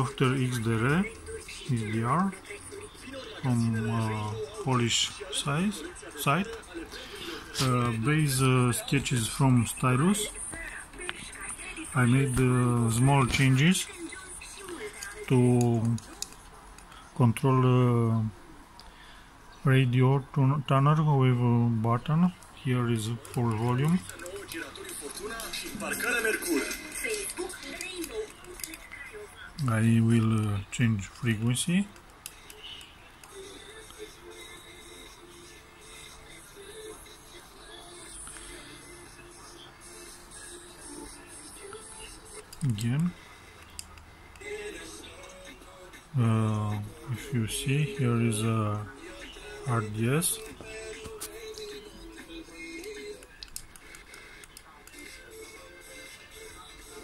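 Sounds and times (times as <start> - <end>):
radio broadcast: 0.0 - 16.2, 19.6 - 31.9, 46.1 - 51.3
radio static hiss: 0.0 - 28.0, 28.8 - 51.8, 52.6 - 57.0
small irregular clicks: 52.8 - 55.1.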